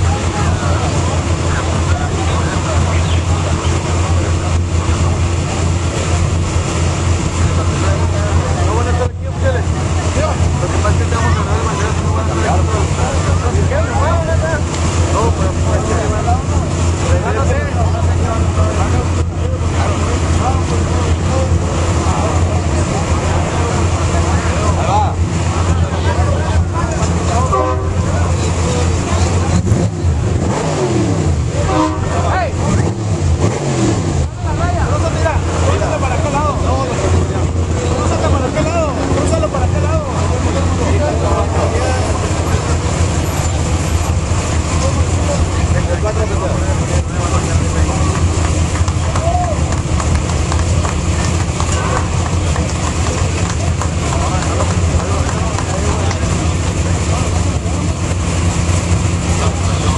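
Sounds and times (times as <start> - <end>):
crowd talking: 0.0 - 59.9
race truck engine idling: 0.0 - 59.9.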